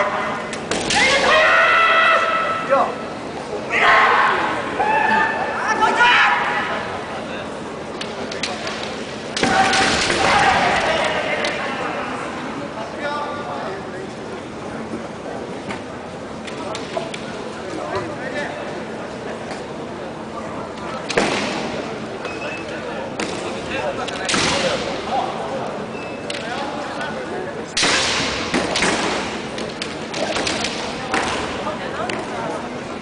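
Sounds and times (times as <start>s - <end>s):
loud shouting: 0.0s - 2.9s, 3.7s - 6.9s, 9.4s - 12.0s
bamboo swords clacking: 27.8s - 32.3s.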